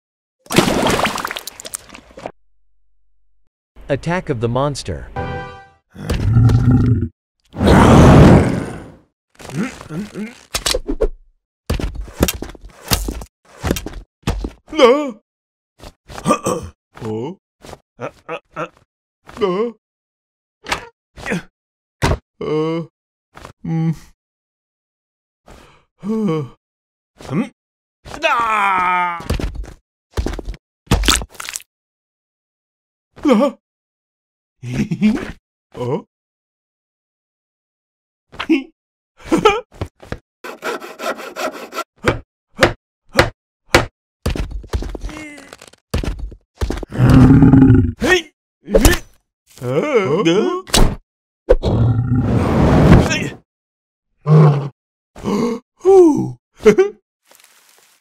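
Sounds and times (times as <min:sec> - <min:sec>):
hand saw cutting wood: 0:40.4 - 0:41.9
man grunting: 0:49.6 - 0:50.7, 0:55.2 - 0:56.8.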